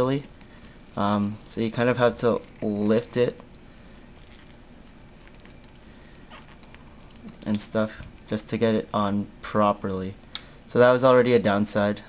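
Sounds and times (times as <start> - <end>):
fingers clicking and rubbing silicone: 0.2 - 8.2.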